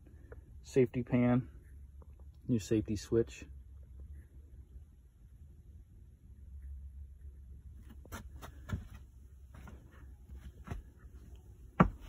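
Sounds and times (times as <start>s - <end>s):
footsteps on plywood boards: 8.1s - 12.0s.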